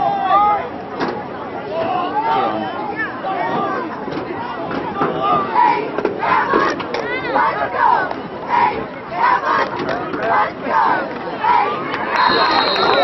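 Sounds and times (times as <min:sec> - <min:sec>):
crowd shouting and yelling: 0:00.0 - 0:13.0.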